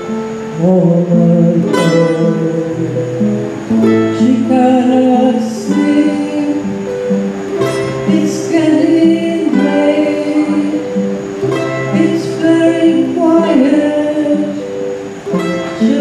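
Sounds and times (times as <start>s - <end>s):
acoustic guitar strumming: 0.0s - 16.0s
mandolin playing: 0.0s - 16.0s.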